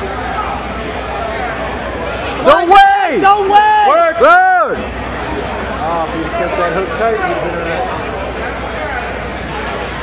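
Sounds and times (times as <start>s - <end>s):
crowd hubbub: 0.0s - 10.0s
distant shout: 2.4s - 4.8s
spectator yelling: 2.4s - 4.8s.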